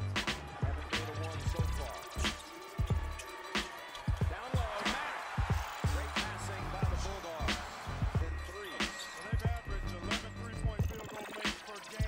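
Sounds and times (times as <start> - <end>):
hip hop beat: 0.0 - 12.0.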